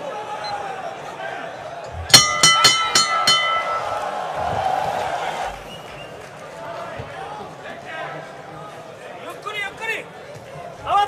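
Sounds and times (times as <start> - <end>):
arena crowd noise: 0.0 - 11.0
boxing ring bell ringing: 2.1 - 4.4.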